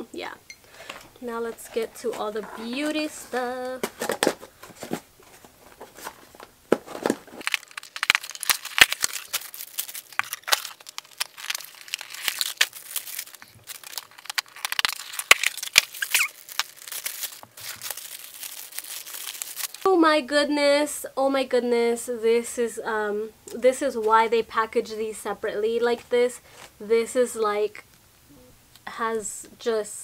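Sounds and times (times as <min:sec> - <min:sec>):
packaging crinkling and tearing: 0:03.8 - 0:19.9.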